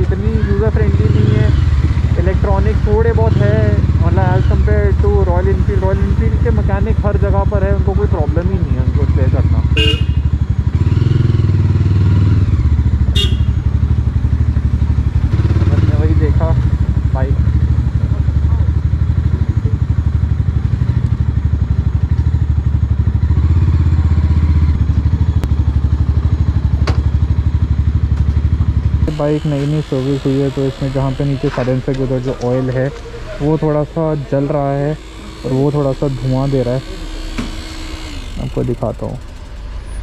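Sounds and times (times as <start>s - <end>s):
motorcycle engine running: 0.0s - 40.0s.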